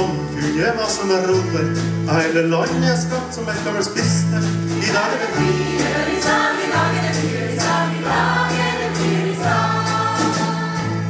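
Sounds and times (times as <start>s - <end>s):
bass notes: 0.0s - 11.0s
choir singing folk-rock: 4.4s - 11.0s.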